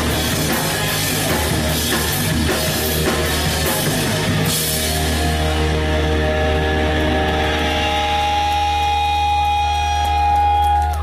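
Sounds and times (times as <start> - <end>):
rock band sustaining a chord: 0.0 - 9.4.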